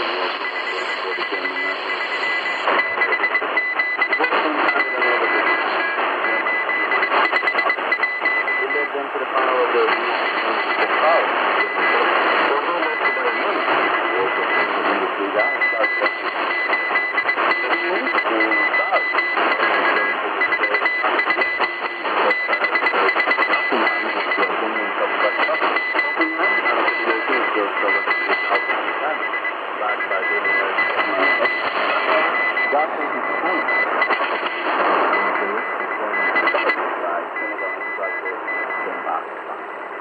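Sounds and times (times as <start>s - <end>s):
garbled radio voices: 0.0s - 40.0s
morse code tone: 0.0s - 40.0s
radio static: 0.0s - 40.0s.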